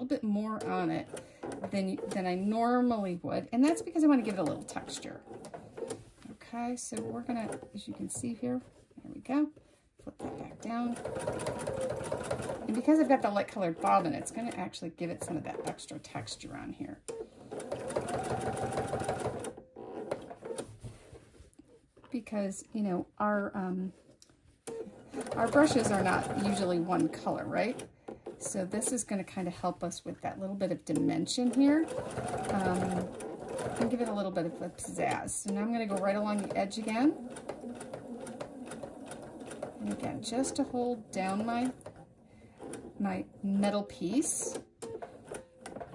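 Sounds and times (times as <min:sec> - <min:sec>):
sewing machine stitching: 0:00.5 - 0:06.0, 0:06.8 - 0:08.3, 0:10.2 - 0:20.7, 0:24.7 - 0:29.2, 0:30.9 - 0:45.9
sewing machine running fast: 0:11.0 - 0:12.7, 0:17.5 - 0:19.4, 0:25.2 - 0:27.3, 0:31.6 - 0:34.1.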